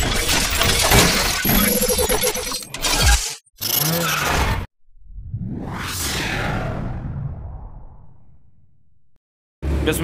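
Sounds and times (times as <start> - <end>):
whoosh sound effects: 5.0 - 8.4.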